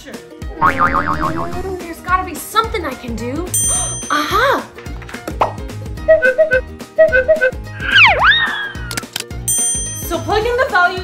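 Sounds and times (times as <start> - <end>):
background music: 0.0 - 11.0
wobbling boing sound effect: 0.6 - 1.7.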